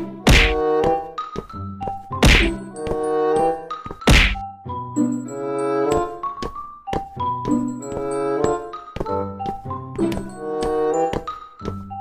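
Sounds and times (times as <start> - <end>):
keyboard background music: 0.0 - 12.0
heavy percussive hit: 4.1 - 4.4.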